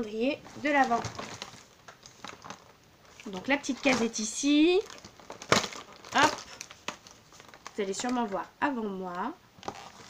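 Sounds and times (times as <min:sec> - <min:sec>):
cardboard tearing and crinkling: 0:00.6 - 0:08.2.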